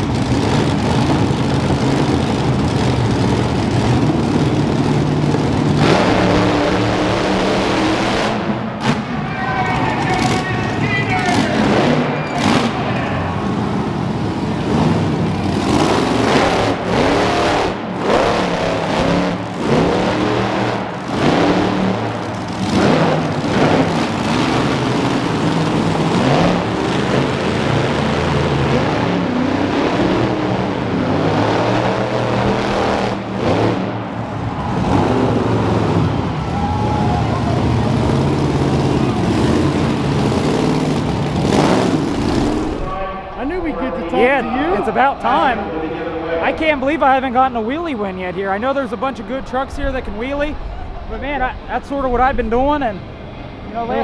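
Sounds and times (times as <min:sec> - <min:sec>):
truck engine revving: 0:00.0 - 0:54.0.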